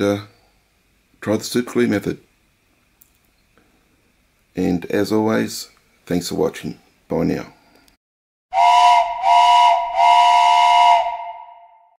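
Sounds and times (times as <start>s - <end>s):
steam whistle blasts: 8.5s - 12.0s.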